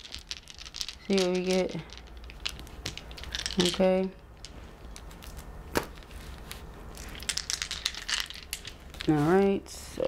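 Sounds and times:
dice rattling in cupped hands: 0.0s - 9.6s.

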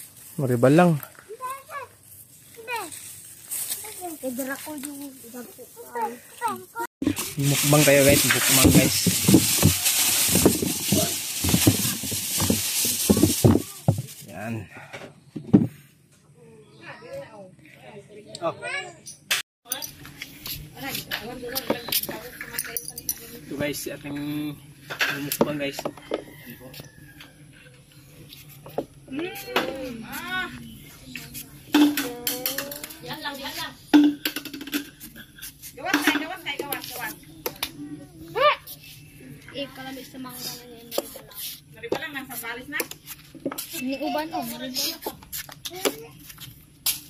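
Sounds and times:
voices talking: 3.6s - 15.0s, 15.7s - 46.4s.

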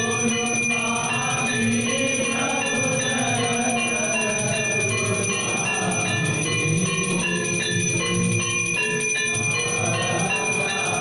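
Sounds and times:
temple bells ringing: 0.0s - 11.0s.

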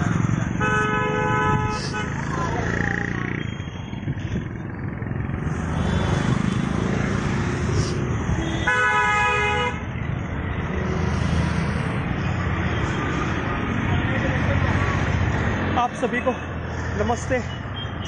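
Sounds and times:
road traffic: 0.0s - 18.0s
vehicle horn: 0.6s - 2.3s, 8.4s - 9.8s.

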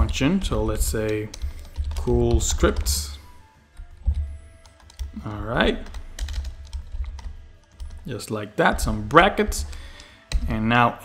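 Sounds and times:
keyboard keystrokes: 0.0s - 3.1s, 3.7s - 8.1s.

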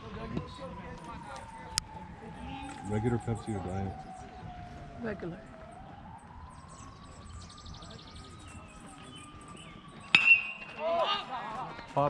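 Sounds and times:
baseball bat crack: 10.1s - 11.3s.

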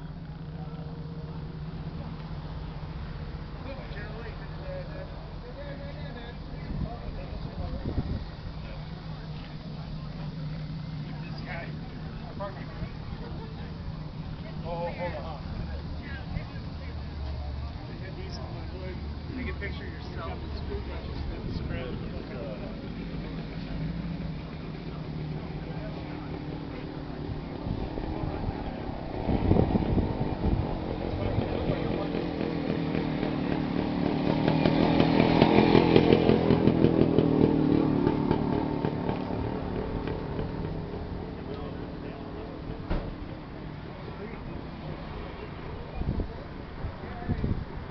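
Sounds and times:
engine humming: 0.0s - 47.9s
faint voices: 0.0s - 47.9s.

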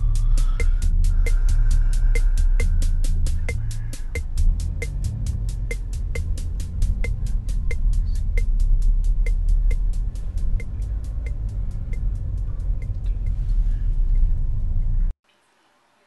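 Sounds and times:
car engine and tyres rumbling: 0.0s - 15.1s
turn signal ticking: 0.0s - 15.1s.

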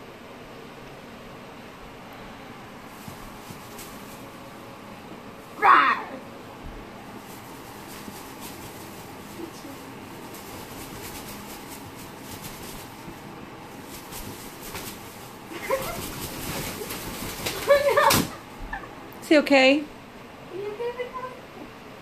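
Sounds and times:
bird wings flapping on bedspread: 2.7s - 5.5s, 6.6s - 18.8s.

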